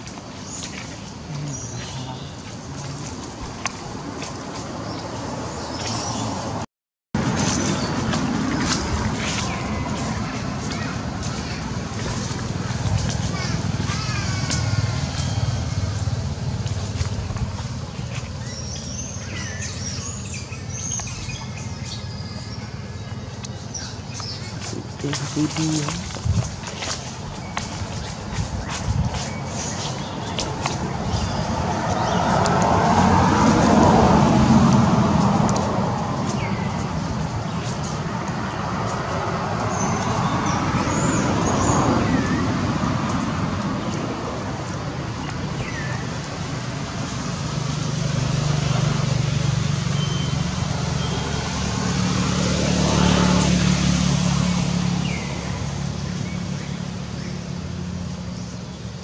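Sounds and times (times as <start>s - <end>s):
low engine hum: 0.0s - 6.6s, 7.2s - 59.0s
vehicles passing by: 0.0s - 59.0s.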